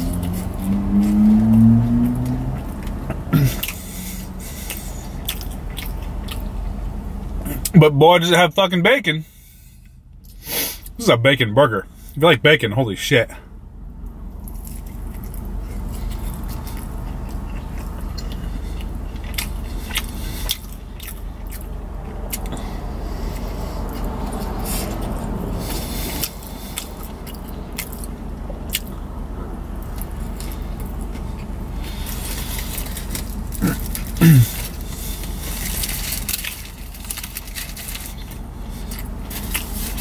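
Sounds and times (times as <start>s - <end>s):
biting and chewing food: 0.0s - 6.9s, 14.3s - 29.0s, 29.7s - 40.0s
low background hum: 0.0s - 40.0s
foil wrapper crackling: 31.9s - 40.0s.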